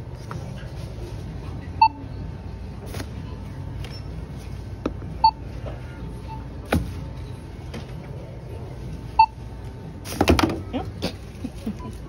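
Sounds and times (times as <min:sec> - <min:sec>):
low background hum: 0:00.0 - 0:12.0
barcode scanner beep: 0:05.2 - 0:05.4, 0:09.2 - 0:09.4.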